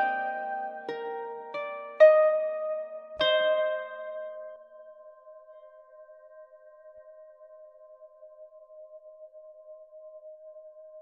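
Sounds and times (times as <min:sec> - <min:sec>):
harp plucked notes: 0:00.0 - 0:05.2.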